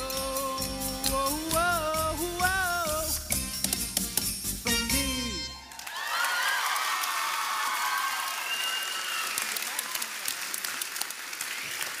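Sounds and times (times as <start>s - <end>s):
whoops and shouted cheers: 5.6s - 10.3s
audience clapping: 5.6s - 12.0s.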